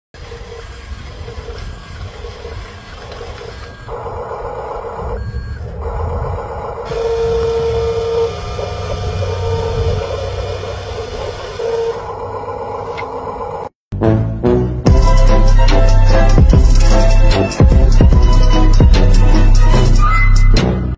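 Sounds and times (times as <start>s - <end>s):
toy truck motor and gears: 0.1s - 13.7s
reversing beeps: 1.4s - 10.5s.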